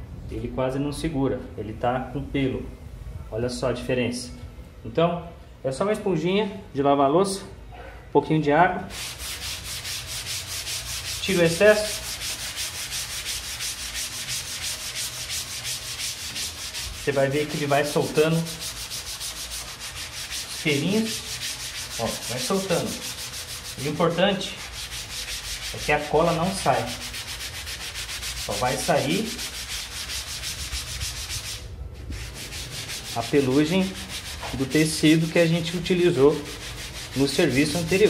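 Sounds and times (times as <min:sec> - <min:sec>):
sponge scrubbing wooden surface: 0:08.9 - 0:38.0.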